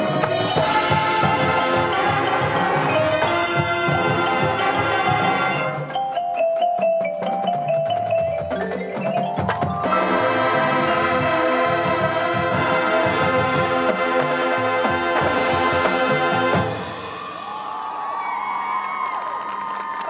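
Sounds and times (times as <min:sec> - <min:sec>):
marching band playing a chord: 0:00.0 - 0:05.9, 0:09.8 - 0:17.0
crowd cheering: 0:16.7 - 0:20.0.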